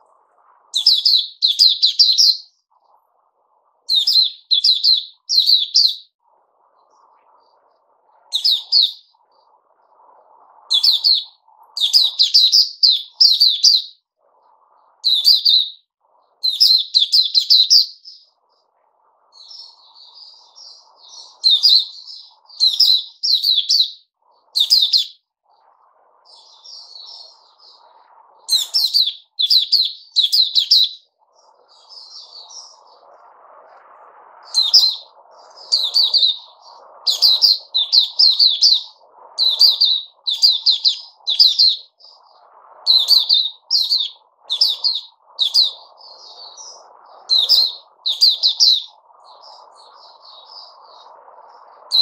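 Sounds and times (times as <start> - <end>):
bird chirping and singing: 0.8 - 2.5, 3.9 - 6.1, 8.3 - 9.0, 10.7 - 14.0, 15.0 - 15.8, 16.4 - 18.2, 19.4 - 24.0, 24.6 - 25.2, 28.5 - 31.0, 34.5 - 42.2, 42.9 - 51.0.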